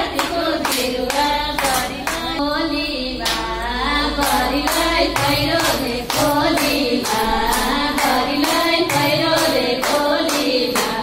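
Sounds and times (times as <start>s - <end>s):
hand clapping: 0.0s - 2.4s, 4.2s - 11.0s.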